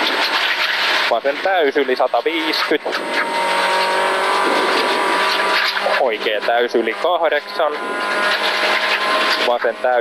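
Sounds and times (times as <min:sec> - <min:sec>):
rally car engine at full throttle: 0:00.0 - 0:10.0.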